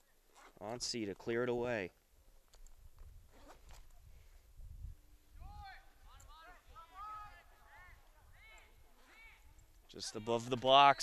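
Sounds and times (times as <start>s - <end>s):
wind rumble on microphone: 2.8s - 6.3s
distant players shouting: 5.4s - 11.0s.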